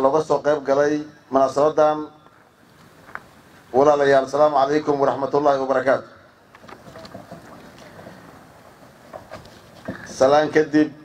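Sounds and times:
man speaking into a microphone: 0:00.0 - 0:02.2, 0:03.7 - 0:06.3, 0:09.9 - 0:11.0
faint background noise: 0:00.0 - 0:11.0.

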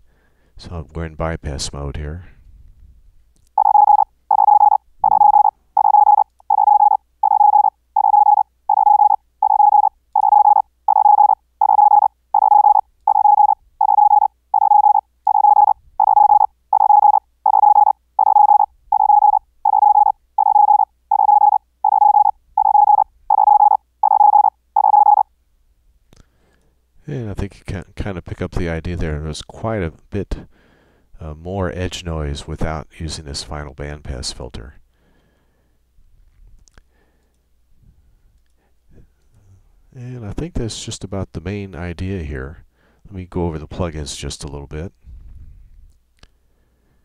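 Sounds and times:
morse code tone: 0:03.6 - 0:25.2.

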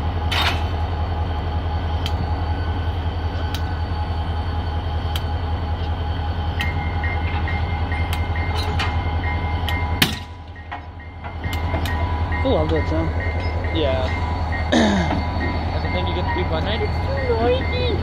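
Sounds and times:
diesel locomotive idling: 0:00.0 - 0:18.0
high beeping: 0:06.6 - 0:18.0
metallic knocks and clanks: 0:08.5 - 0:09.0, 0:10.0 - 0:12.0.

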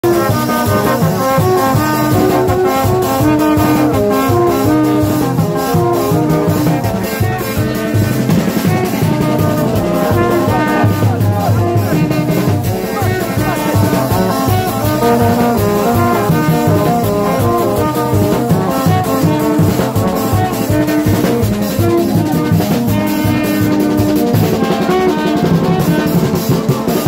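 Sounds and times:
horns playing a melody: 0:00.0 - 0:27.0
steady drumming: 0:00.0 - 0:27.0
street band playing: 0:00.0 - 0:27.0.

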